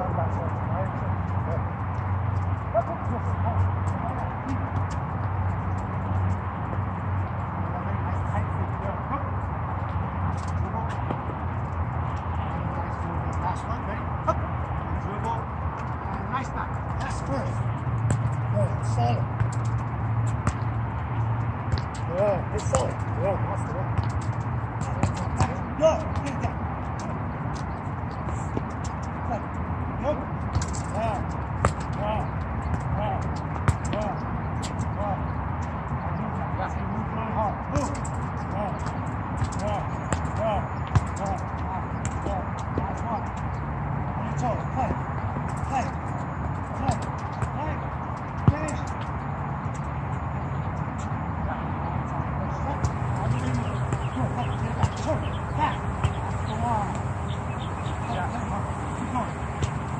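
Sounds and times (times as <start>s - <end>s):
balls kicked and bouncing: 0.0s - 59.9s
faint voices: 51.3s - 59.9s.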